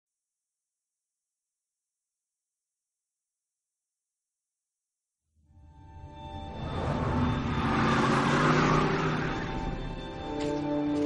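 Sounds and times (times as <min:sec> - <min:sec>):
car engine revving past: 0:06.2 - 0:10.5.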